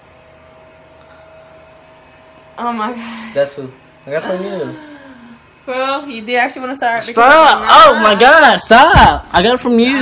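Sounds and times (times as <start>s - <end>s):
thin steady hum: 0.0s - 10.0s.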